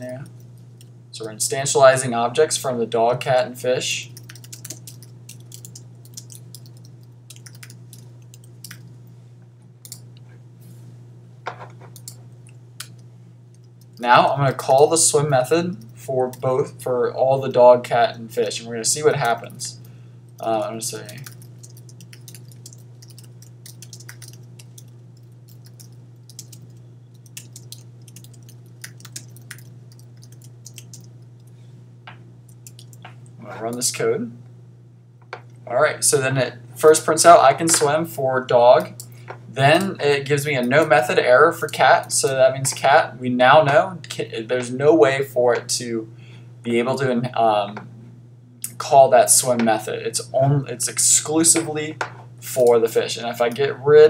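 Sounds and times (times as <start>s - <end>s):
steady low hum: 0.0s - 54.0s
keyboard typing clicks: 4.2s - 8.8s, 21.1s - 31.2s, 32.6s - 33.1s.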